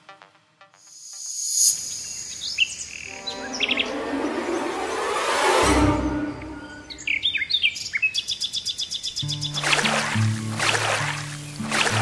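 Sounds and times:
birds chirping: 1.8 - 12.0
steady high trill: 3.0 - 7.4
title music: 3.1 - 7.4.

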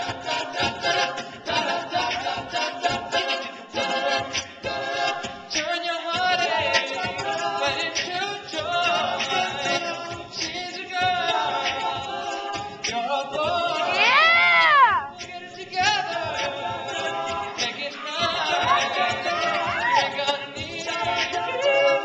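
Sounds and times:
male a cappella group singing: 0.0 - 22.0
percussive vocal beats: 0.0 - 22.0.

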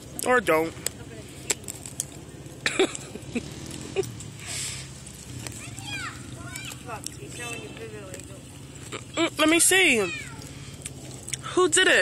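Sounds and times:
distant engine running: 0.0 - 12.0.

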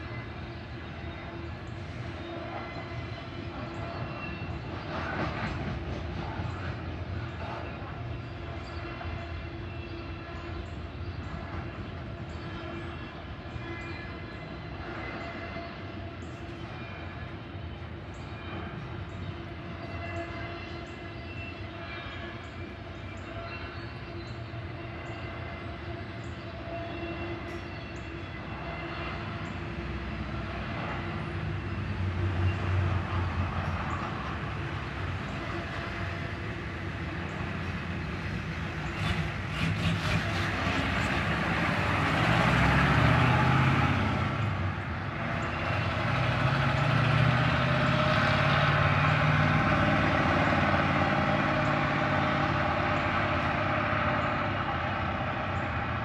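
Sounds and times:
freight train wheels rumbling: 0.0 - 56.0.

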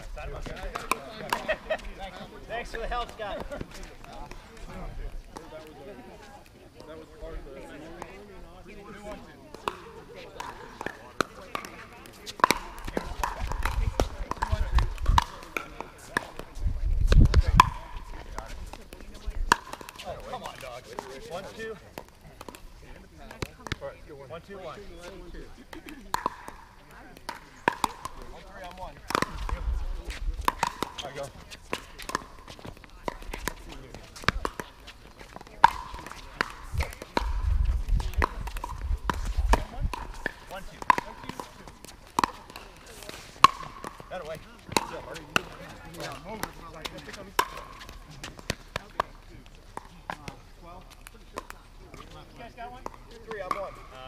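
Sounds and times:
paddles hitting plastic ball: 0.4 - 1.7, 9.0 - 23.8, 25.6 - 54.0.

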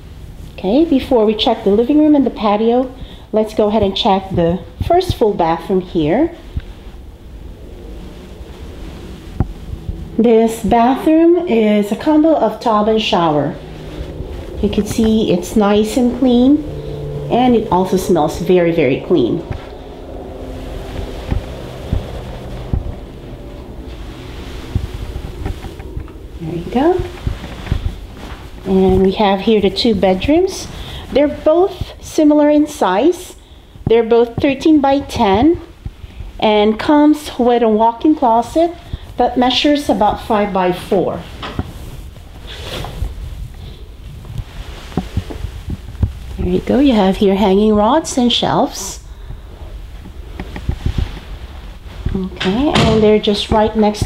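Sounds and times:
microphone handling rumble: 0.0 - 54.0
soft low thumps: 1.7 - 32.7, 33.8 - 39.3, 41.0 - 48.2, 49.1 - 54.0
soft footstep thumps: 20.8 - 26.3.

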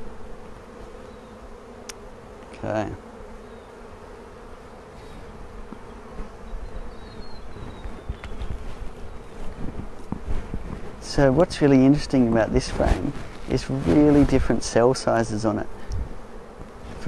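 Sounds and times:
honeybees buzzing: 0.0 - 17.0.

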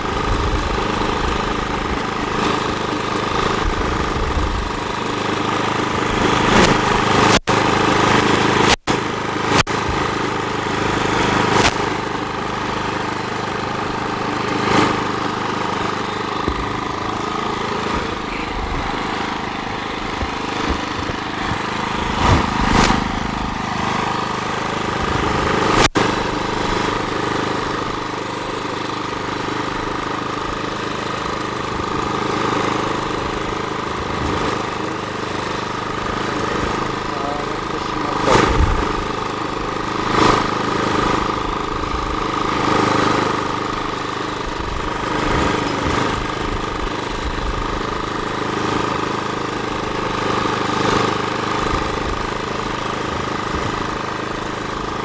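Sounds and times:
small petrol engine running: 0.0 - 55.0.

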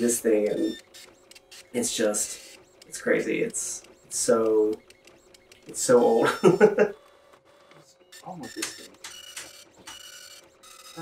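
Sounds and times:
dot matrix printer bursts and clicks: 0.0 - 11.0.

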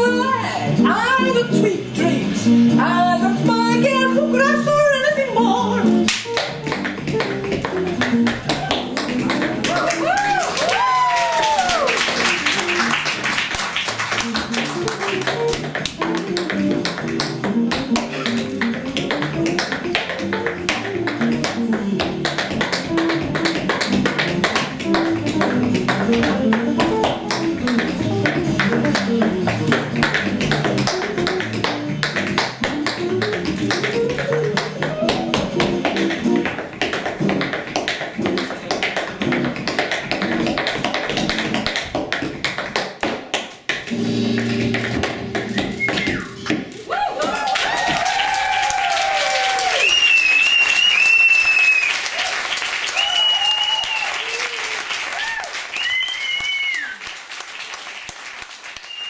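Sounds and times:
instrumental music: 0.0 - 46.8
tap shoes tapping: 6.1 - 49.4.

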